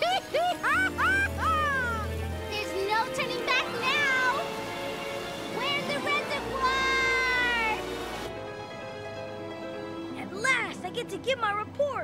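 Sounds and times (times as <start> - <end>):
high wordless cartoon cries: 0.0 - 2.2
background music: 0.0 - 12.0.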